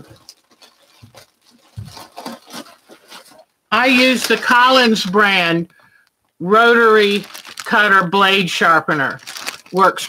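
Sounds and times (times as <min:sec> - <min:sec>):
small objects being handled: 0:00.0 - 0:05.2, 0:06.9 - 0:08.0, 0:08.9 - 0:10.0.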